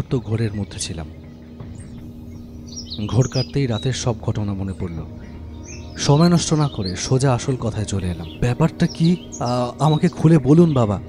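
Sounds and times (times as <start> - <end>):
faint bird chirping: 0.0 - 11.0
soft sustained drone music: 0.0 - 11.0.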